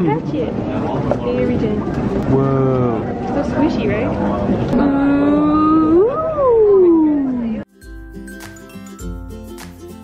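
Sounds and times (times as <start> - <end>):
soft music with plucked notes: 7.7 - 10.0.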